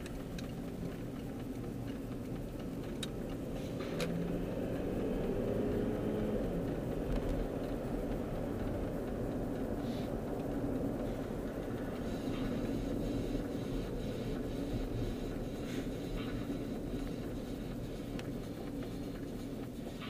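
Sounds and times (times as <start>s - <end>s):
car engine and road noise: 0.0s - 20.0s.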